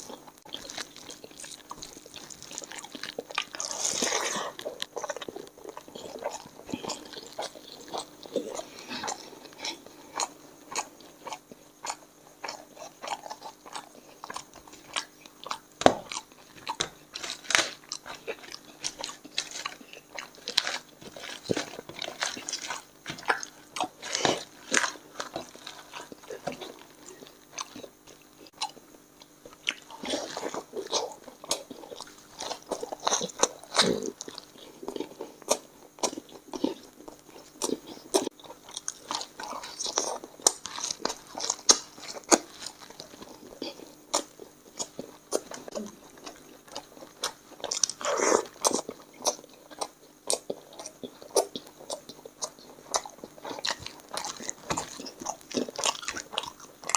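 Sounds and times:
person chewing with mouth smacks: 0.0s - 56.9s.

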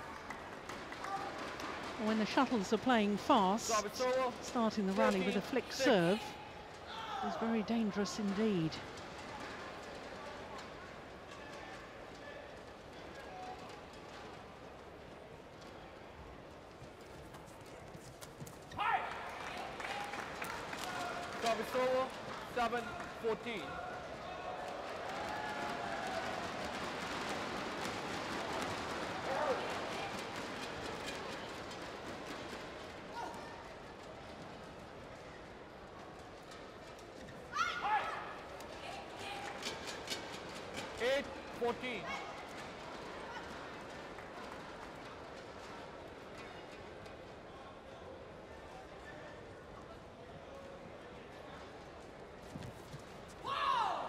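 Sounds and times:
crowd noise: 0.0s - 54.0s.

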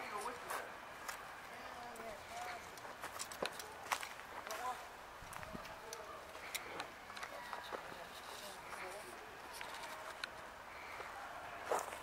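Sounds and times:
faint indistinct voices: 0.0s - 12.0s
footsteps crunching on gravel: 2.0s - 6.5s, 11.0s - 12.0s.

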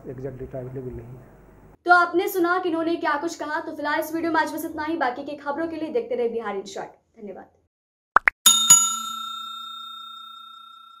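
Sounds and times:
bell-like chime ringing: 8.4s - 11.0s.

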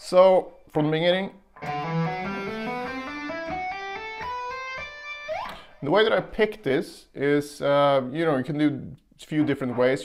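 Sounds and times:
electric guitar legato run: 1.6s - 5.3s.

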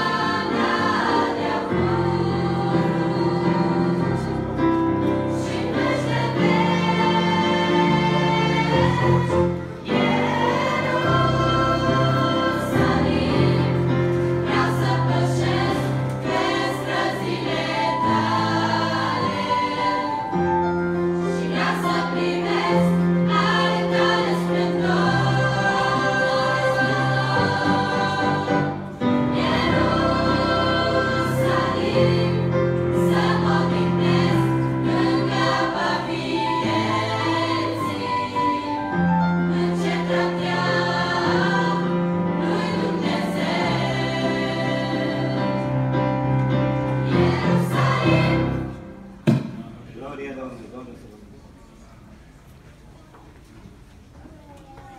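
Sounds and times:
girls' choir singing a hymn: 0.0s - 49.6s.

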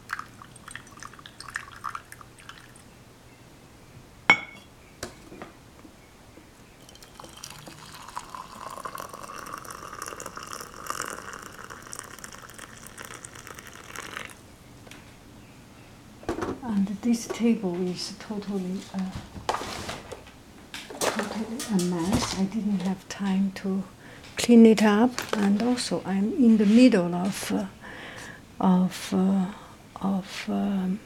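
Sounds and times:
hot water pouring into teapot: 0.0s - 2.8s, 6.8s - 14.4s
small drips: 0.0s - 2.8s, 6.8s - 14.4s.

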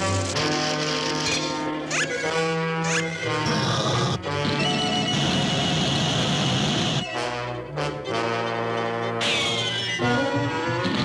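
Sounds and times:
orchestral music led by brass: 0.0s - 5.0s, 7.0s - 10.9s.

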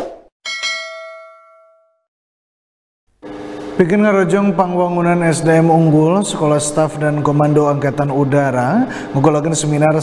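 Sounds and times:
bell-like notification ding: 0.5s - 2.1s.

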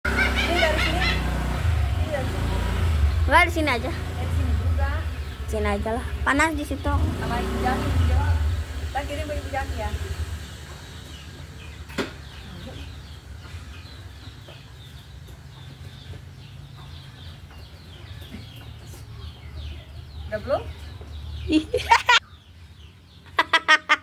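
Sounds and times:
birds chirping: 0.0s - 24.0s
voice: 0.4s - 1.2s, 2.0s - 2.4s, 3.3s - 10.1s.

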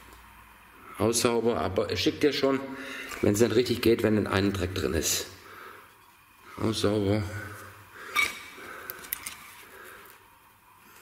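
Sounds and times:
pitched squeak: 8.1s - 8.5s
hands handling metal parts: 8.1s - 9.6s.

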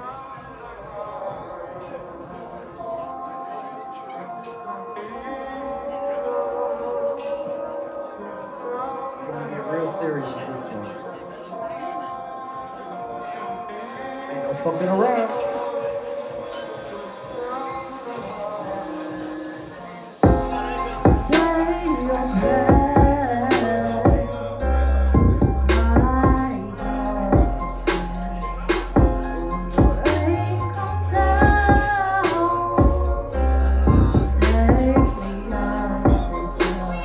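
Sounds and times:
hip-hop backing track: 14.4s - 37.0s.

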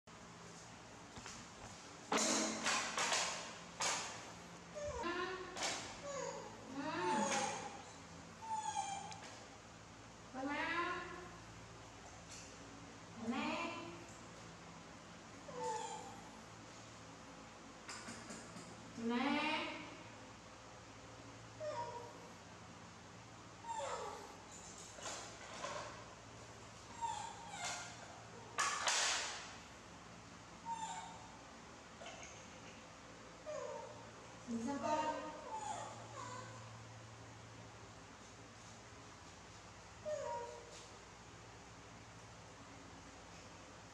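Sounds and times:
low room hum: 0.1s - 43.9s
baby monkey whiny call: 6.0s - 7.8s, 8.4s - 9.2s, 15.5s - 16.2s, 27.0s - 28.1s, 30.7s - 31.3s, 35.4s - 36.6s, 40.1s - 40.7s.

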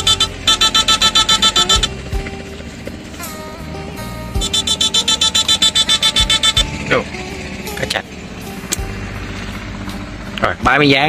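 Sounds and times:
low steady hum: 0.0s - 11.0s
rapid electric buzz pulsing: 0.0s - 11.0s.

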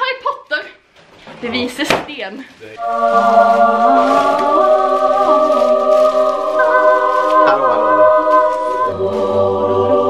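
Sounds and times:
choir singing sustained chord: 2.8s - 10.0s.

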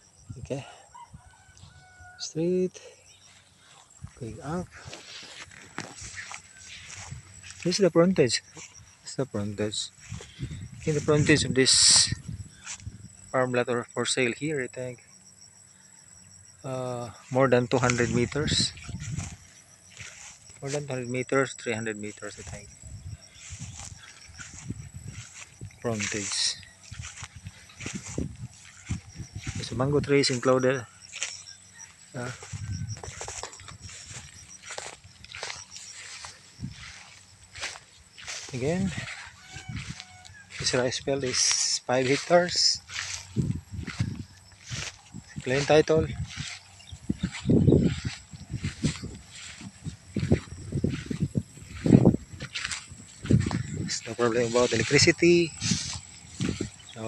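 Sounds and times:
footsteps through tall grass: 0.0s - 57.0s
man speaking: 0.4s - 0.8s, 4.2s - 5.0s, 7.6s - 10.0s, 10.8s - 12.2s, 13.3s - 15.0s, 16.6s - 19.0s, 20.6s - 22.7s, 25.8s - 26.6s, 29.4s - 30.9s, 32.1s - 32.5s, 38.4s - 39.2s, 40.6s - 43.0s, 45.4s - 46.3s, 53.8s - 55.6s.

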